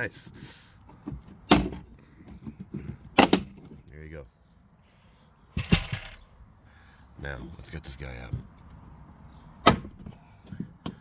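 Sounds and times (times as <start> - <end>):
plastic panel clattering: 5.6 - 6.2.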